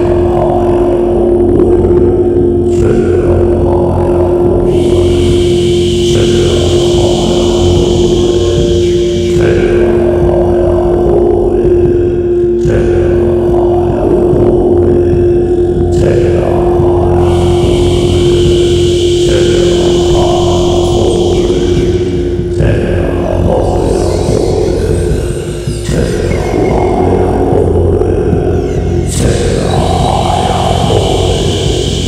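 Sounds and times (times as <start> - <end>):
held tone: 0.0 - 32.0
pulsing low drone: 0.0 - 32.0.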